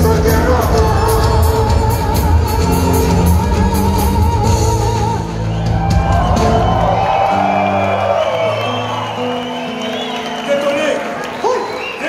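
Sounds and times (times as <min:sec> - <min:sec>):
live rock band: 0:00.0 - 0:12.0
audience cheering and whooping: 0:02.2 - 0:12.0.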